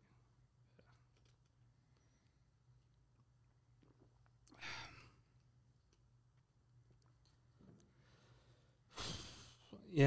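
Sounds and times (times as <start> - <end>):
faint room hum: 0.0 - 10.0
person sighing: 4.5 - 5.2.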